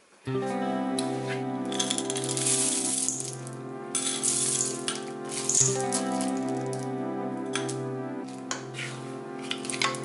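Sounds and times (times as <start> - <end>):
background music with held notes: 0.2 - 10.0
chocolate chips rattling into bowl: 1.8 - 3.3, 4.0 - 6.4.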